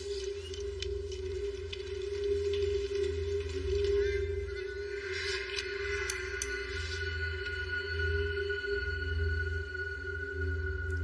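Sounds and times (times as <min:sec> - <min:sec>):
held tones of film score: 0:00.0 - 0:11.0.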